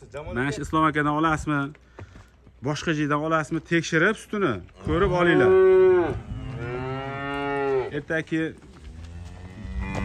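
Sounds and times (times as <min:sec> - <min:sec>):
cow mooing: 0:04.8 - 0:08.0.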